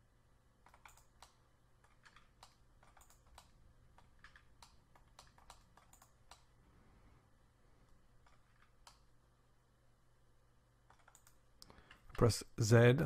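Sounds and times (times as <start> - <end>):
faint low hum: 0.0 - 13.0
keyboard and mouse clicking: 0.6 - 6.5, 8.2 - 9.1, 10.8 - 12.3.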